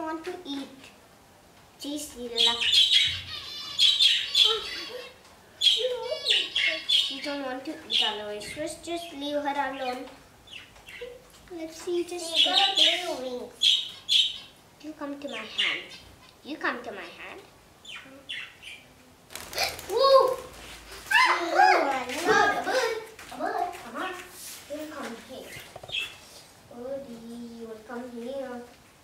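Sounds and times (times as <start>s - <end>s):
budgerigar calling: 2.4s - 8.2s, 13.6s - 14.6s, 15.3s - 16.1s.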